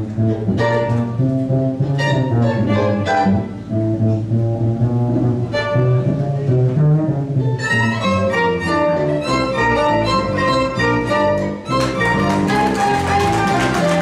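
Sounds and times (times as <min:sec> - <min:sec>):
fiddles playing hot jazz: 0:00.0 - 0:04.2, 0:07.3 - 0:14.0
upright double bass: 0:00.0 - 0:14.0.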